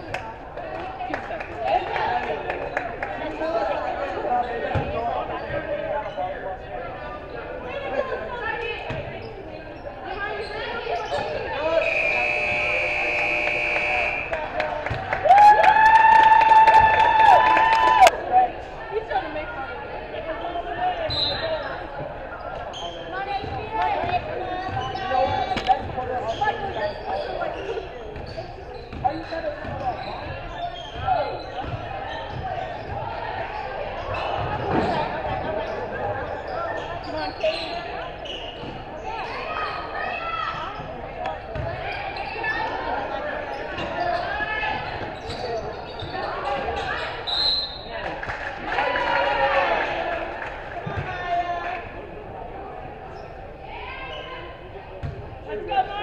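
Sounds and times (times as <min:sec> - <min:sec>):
voices echoing in gym: 0:00.0 - 0:56.0.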